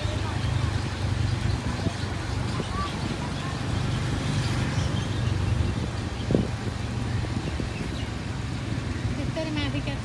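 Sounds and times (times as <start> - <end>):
road and wind noise: 0.0 - 10.0.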